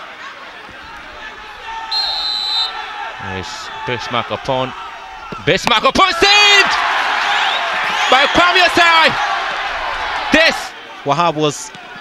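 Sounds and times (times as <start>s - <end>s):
voices of players and spectators: 0.0s - 12.0s
referee's whistle blast: 1.8s - 2.9s.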